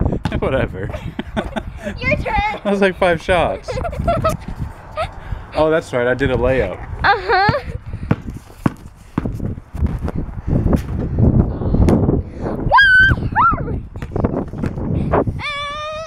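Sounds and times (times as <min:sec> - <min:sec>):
basketball bouncing on concrete: 0:00.2 - 0:00.5, 0:07.4 - 0:10.2, 0:13.9 - 0:14.8
girl crying out: 0:12.7 - 0:13.8, 0:15.4 - 0:16.0
girl squealing: 0:12.7 - 0:13.8, 0:15.4 - 0:16.0.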